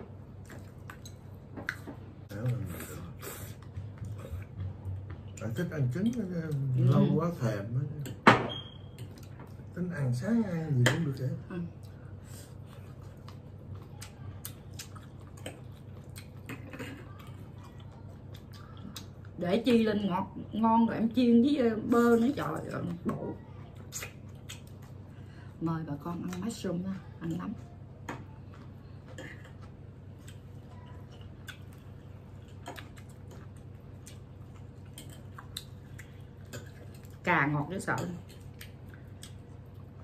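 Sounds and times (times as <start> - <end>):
faint low hum: 0.0 - 40.0.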